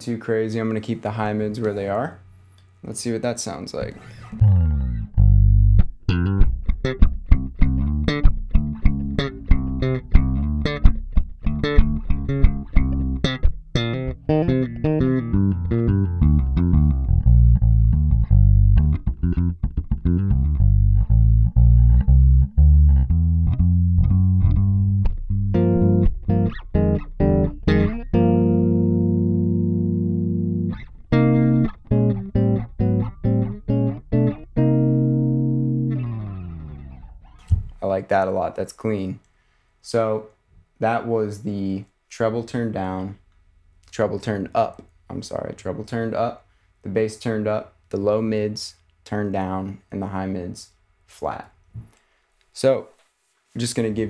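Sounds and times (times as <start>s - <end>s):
electric bass plucked notes: 3.8s - 38.0s.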